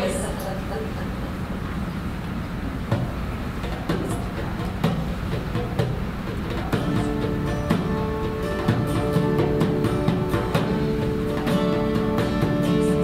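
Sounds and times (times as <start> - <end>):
low room rumble: 0.0 - 13.0
acoustic guitar playing: 2.9 - 13.0.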